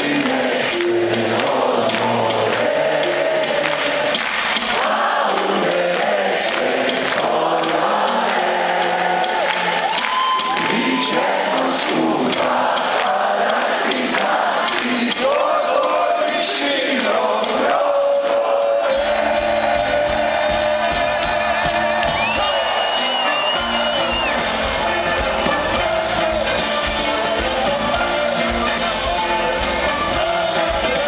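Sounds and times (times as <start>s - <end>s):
crowd singing along: 0.0s - 31.0s
live band playing: 0.0s - 31.0s.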